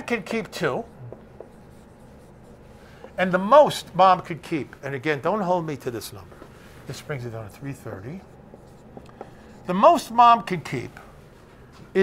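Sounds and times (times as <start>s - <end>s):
marker strokes on whiteboard: 0.0s - 4.6s, 5.9s - 11.5s.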